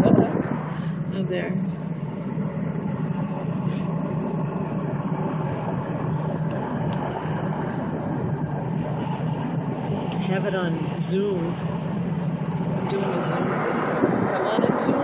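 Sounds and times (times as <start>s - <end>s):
engine running: 0.0s - 15.0s.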